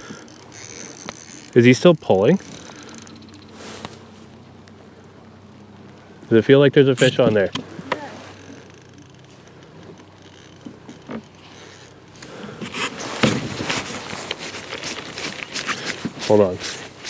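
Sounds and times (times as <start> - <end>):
fishing reel clicking and scraping: 0.0 - 3.5, 7.8 - 13.0.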